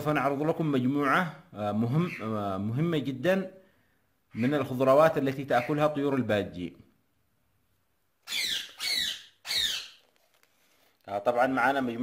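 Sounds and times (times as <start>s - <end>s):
budgerigar chirps: 8.2s - 10.0s.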